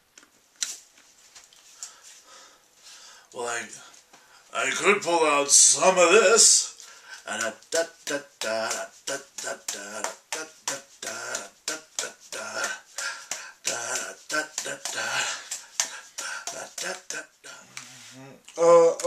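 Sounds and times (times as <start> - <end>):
man making vocal percussion sounds: 4.8 - 19.0.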